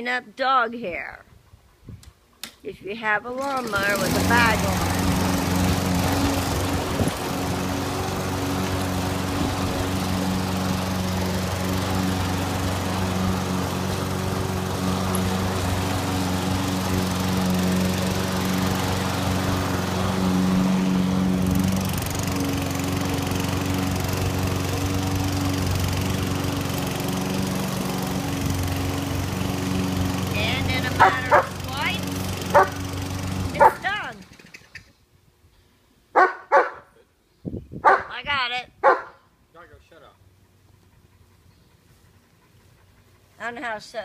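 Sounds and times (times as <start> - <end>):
lawn mower running: 3.0 - 34.9.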